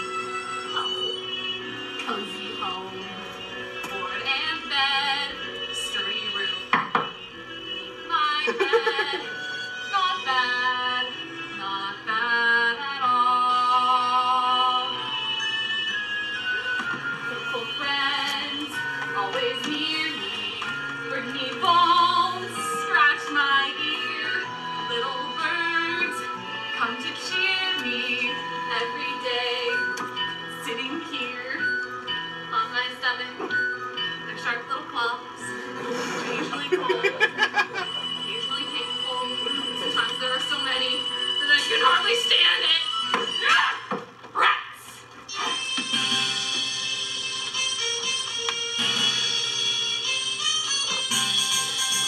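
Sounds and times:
woman singing: 0:00.6 - 0:15.4, 0:17.3 - 0:31.8, 0:38.3 - 0:43.5
instrumental accompaniment: 0:45.3 - 0:52.0.

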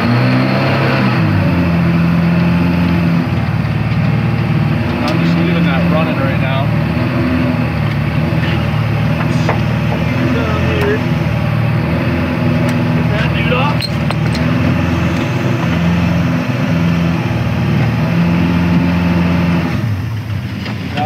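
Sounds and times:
jet boat motor revving: 0:00.0 - 0:21.0.

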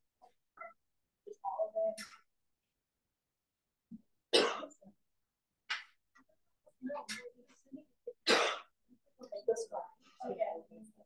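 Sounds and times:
person coughing: 0:04.3 - 0:04.8.

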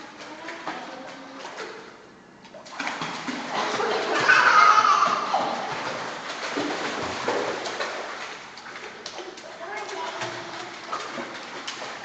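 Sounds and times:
children splashing in pool water: 0:00.0 - 0:01.9, 0:02.6 - 0:12.0.

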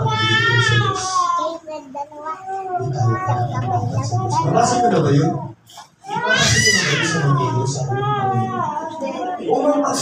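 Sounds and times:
man talking: 0:02.6 - 0:10.0
high-pitched cry: 0:06.1 - 0:09.2.

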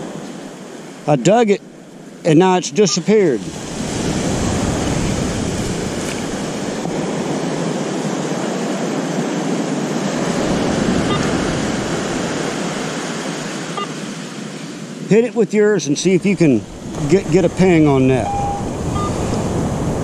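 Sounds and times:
waves breaking on beach: 0:00.0 - 0:20.0.

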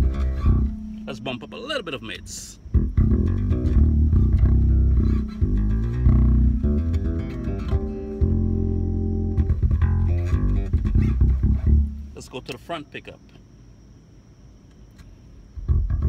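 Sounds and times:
electric bass plucked notes: 0:00.0 - 0:12.4, 0:15.6 - 0:16.0.

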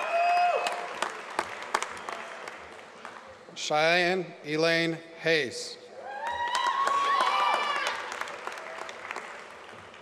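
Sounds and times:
audience applause: 0:00.0 - 0:03.0, 0:06.2 - 0:10.0.

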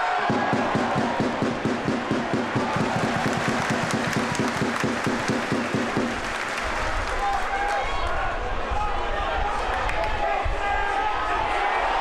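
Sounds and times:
stadium crowd noise: 0:00.0 - 0:12.0
people clapping: 0:02.5 - 0:08.2, 0:09.6 - 0:10.2.

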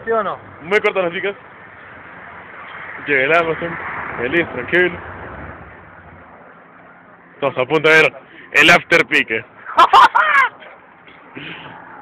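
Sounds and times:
low street noise: 0:00.0 - 0:12.0.

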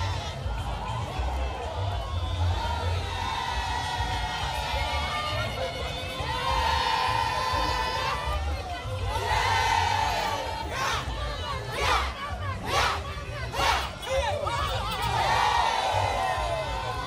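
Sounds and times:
crowd chanting and cheering: 0:00.0 - 0:17.0.

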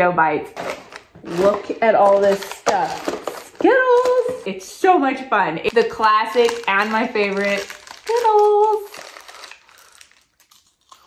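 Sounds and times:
plastic wrapper crinkling: 0:00.6 - 0:04.5, 0:05.6 - 0:11.0.

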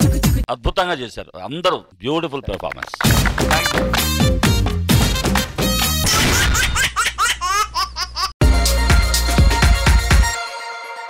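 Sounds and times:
cartoonish laugh sound effect: 0:06.0 - 0:08.3.

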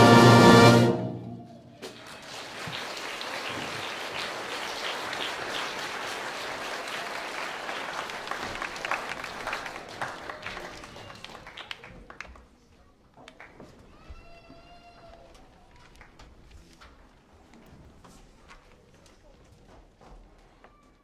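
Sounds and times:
audience applauding: 0:01.8 - 0:12.5.

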